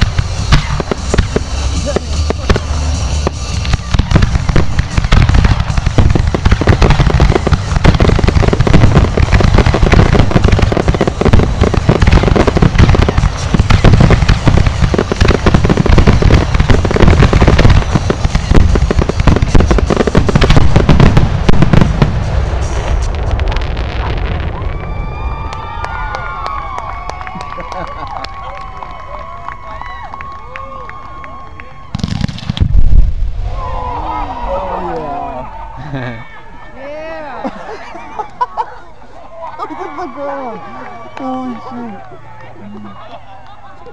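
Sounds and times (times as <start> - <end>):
fireworks banging: 0.0 - 28.0, 31.8 - 33.8.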